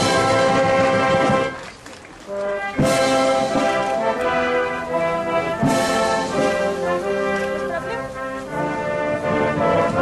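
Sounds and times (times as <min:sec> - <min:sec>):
brass band playing chords: 0:00.0 - 0:10.0.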